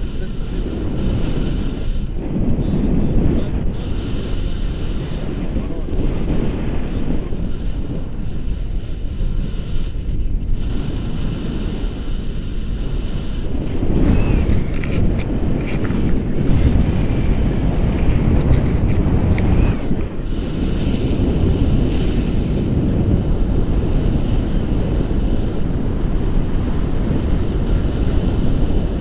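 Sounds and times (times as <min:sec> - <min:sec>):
wind rushing over microphone: 0:00.0 - 0:29.0.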